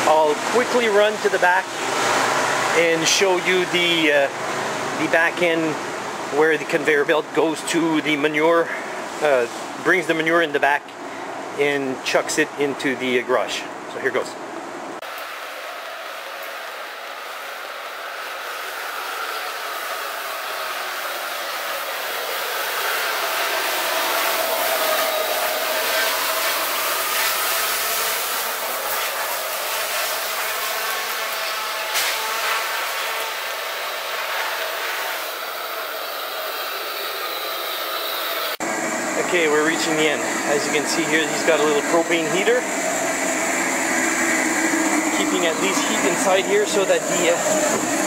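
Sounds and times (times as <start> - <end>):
pressure washer spraying water: 15.1 - 38.6, 39.2 - 48.0.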